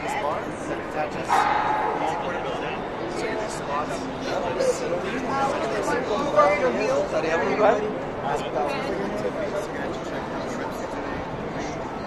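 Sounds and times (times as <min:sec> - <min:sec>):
people talking in a busy hall: 0:00.0 - 0:12.0.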